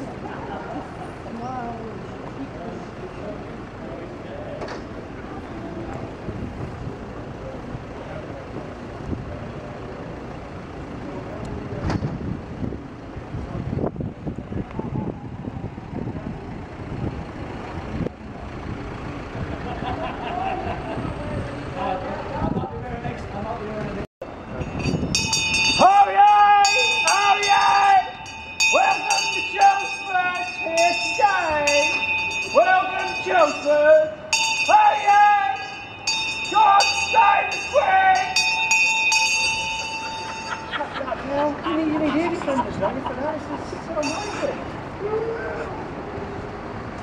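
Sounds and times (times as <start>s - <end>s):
street noise: 0.0s - 47.0s
wind: 0.0s - 47.0s
handbell ringing: 24.3s - 40.9s, 44.0s - 44.6s
man shouting drawn-out calls: 25.8s - 35.8s, 36.4s - 38.5s.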